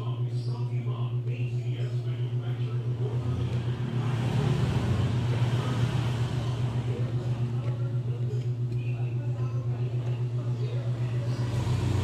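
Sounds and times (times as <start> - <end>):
low pulsing hum: 0.0 - 12.0
road vehicle passing by: 3.0 - 7.4, 11.3 - 12.0.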